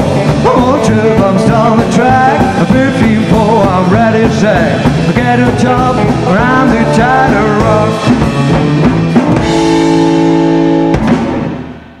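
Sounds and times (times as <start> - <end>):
double bass: 0.0 - 11.1
drum hits: 0.0 - 12.0
electric guitar chord: 6.0 - 12.0.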